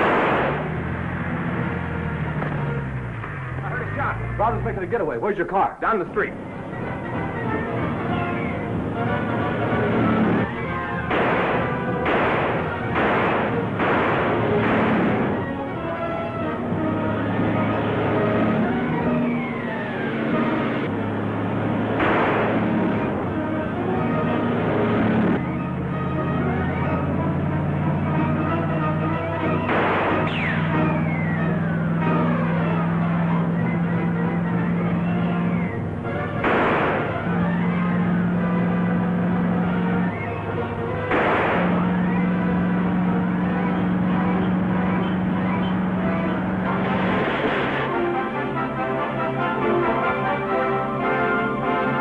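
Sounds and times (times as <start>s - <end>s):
dramatic orchestral music: 0.0s - 52.0s
sharp orchestral hits: 10.6s - 15.9s.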